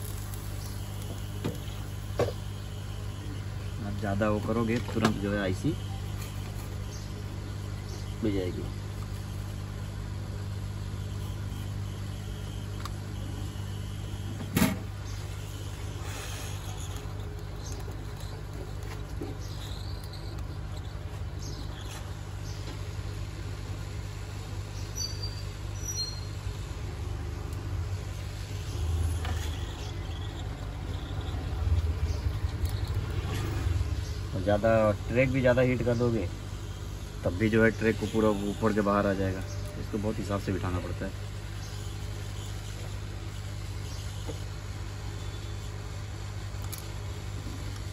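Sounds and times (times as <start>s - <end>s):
hot-air gun blowing with hum: 0.0s - 47.9s.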